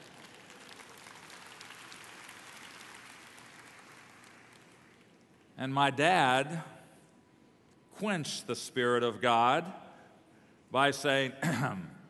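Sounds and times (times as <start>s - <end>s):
crowd applauding: 0.0s - 5.2s.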